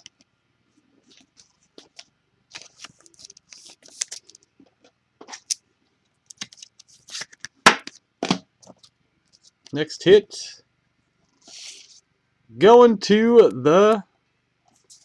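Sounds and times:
small rustles and clicks: 0.0s - 7.5s, 8.6s - 9.8s, 14.6s - 15.0s.

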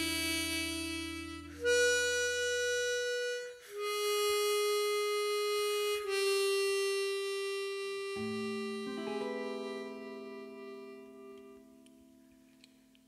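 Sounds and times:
harmonica holding a note: 0.0s - 12.5s
clean electric guitar chords: 8.3s - 12.5s.

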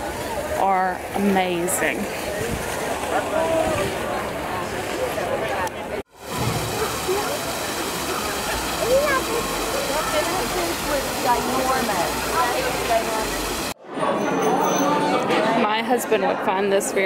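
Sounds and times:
people's voices: 0.0s - 17.0s
waterfall splashing into pond: 6.1s - 13.8s
chatter in a room: 6.7s - 17.0s.

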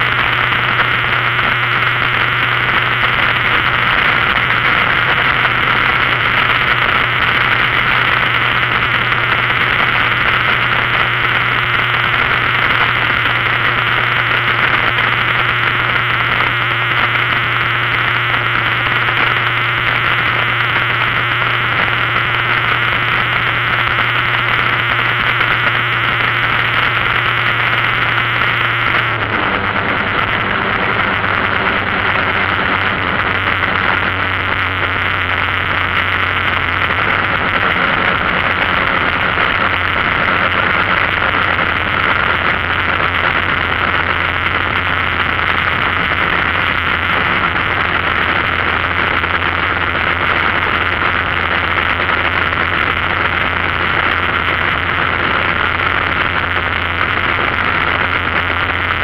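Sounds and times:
low engine hum: 0.0s - 59.0s.

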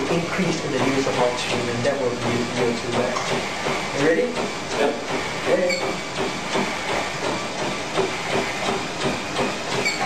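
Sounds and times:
running footfalls on treadmill: 0.0s - 10.0s
treadmill belt and motor hiss: 0.0s - 10.0s.

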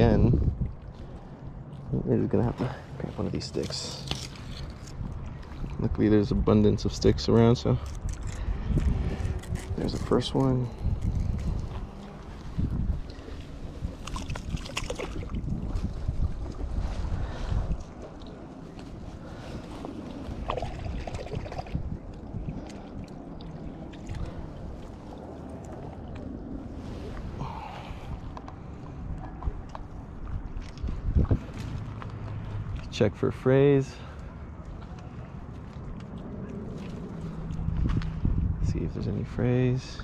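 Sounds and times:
wind rumbling on microphone: 0.0s - 40.0s.

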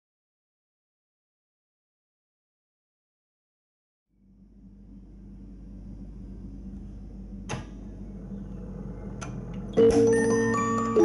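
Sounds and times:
music box mechanism humming: 8.1s - 11.0s.

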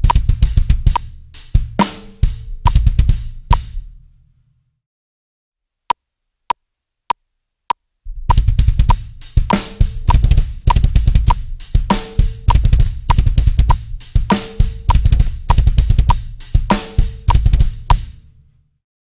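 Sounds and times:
ringing snare drum: 0.0s - 3.8s, 8.1s - 18.2s
drum kit with double bass drums: 0.0s - 3.9s, 8.1s - 18.3s
click track ticking: 8.9s - 11.4s.

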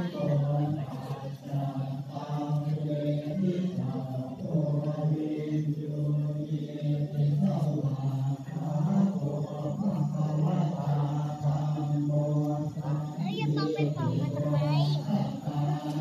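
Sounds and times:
group chanting in unison: 0.0s - 16.0s.

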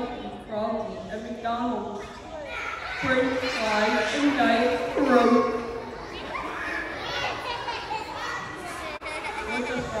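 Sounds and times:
children's voices overlapping: 1.9s - 10.0s.

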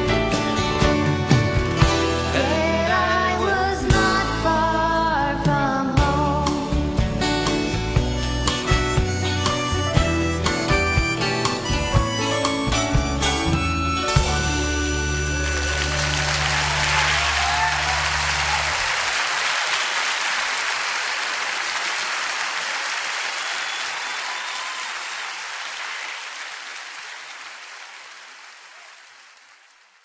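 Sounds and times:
audience applauding: 15.0s - 30.0s.

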